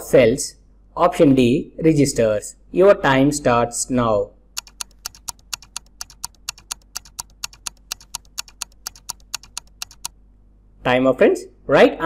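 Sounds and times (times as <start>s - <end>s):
quick clock-like ticks: 4.6s - 10.1s.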